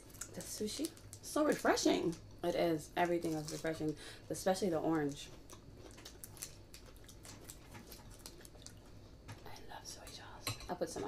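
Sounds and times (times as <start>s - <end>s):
small eating clicks: 4.7s - 10.2s.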